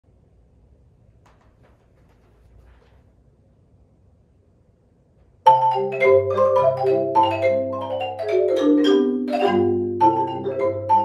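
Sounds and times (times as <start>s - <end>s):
marimba quartet playing: 5.5s - 11.0s.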